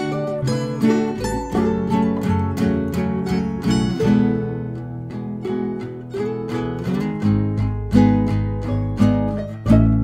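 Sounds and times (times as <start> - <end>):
guitar strumming: 0.0 - 10.0.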